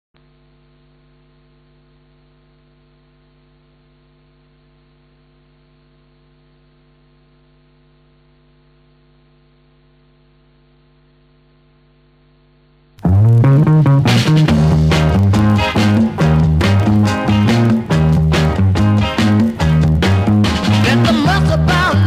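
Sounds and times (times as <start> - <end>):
faint mains hum: 0.2 - 22.0
record player hiss: 0.2 - 22.0.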